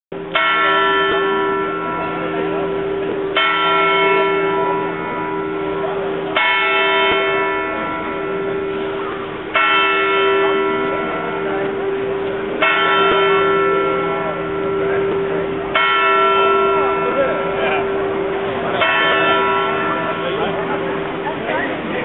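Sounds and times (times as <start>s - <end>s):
clock tower bell striking: 0.2s - 21.8s.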